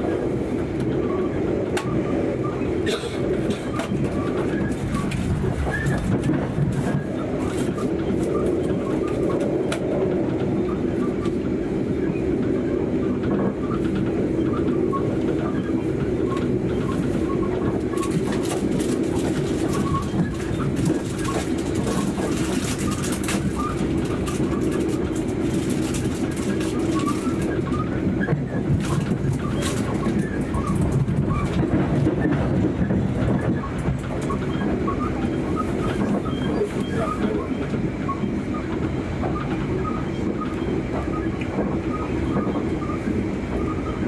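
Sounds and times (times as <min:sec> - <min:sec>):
train rumbling at speed: 0:00.0 - 0:44.0.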